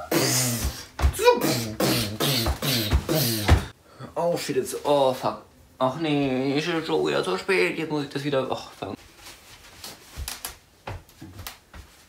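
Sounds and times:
cloth rustling: 0:08.9 - 0:12.0.

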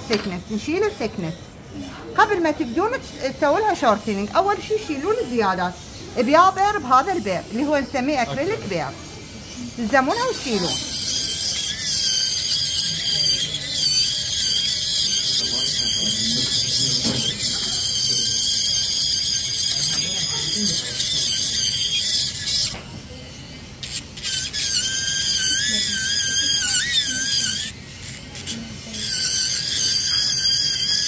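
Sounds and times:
high-pitched dental drill whine: 0:00.0 - 0:31.0.

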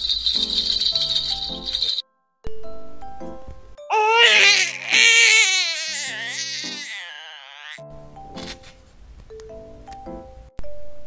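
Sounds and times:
baby rattle jingling: 0:00.0 - 0:02.0
light background music: 0:00.0 - 0:11.0.

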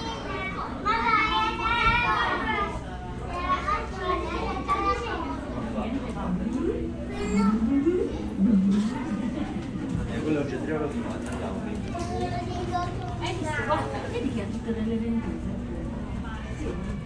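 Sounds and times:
people talking: 0:00.0 - 0:17.0
young child's voice: 0:07.1 - 0:07.6, 0:12.0 - 0:13.7.

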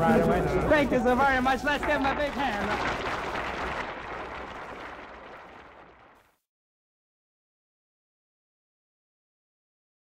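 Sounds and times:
audience applauding: 0:00.1 - 0:06.4.

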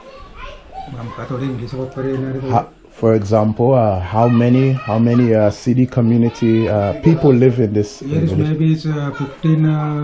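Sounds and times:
man's voice: 0:05.8 - 0:10.0.

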